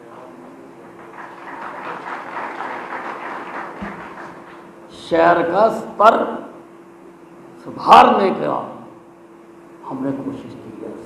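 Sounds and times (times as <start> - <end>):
audience applauding: 0.8 - 4.8.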